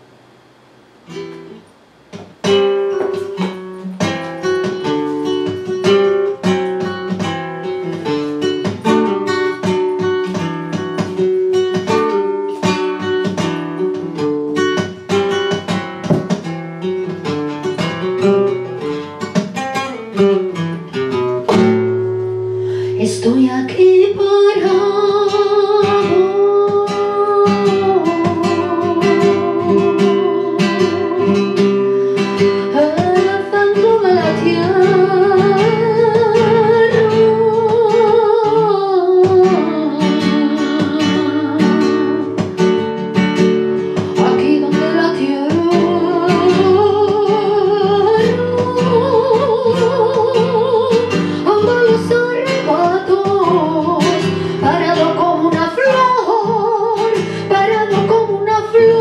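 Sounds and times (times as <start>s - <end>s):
strummed and plucked guitar: 0.0s - 59.0s
woman singing: 22.9s - 42.7s, 44.0s - 59.0s.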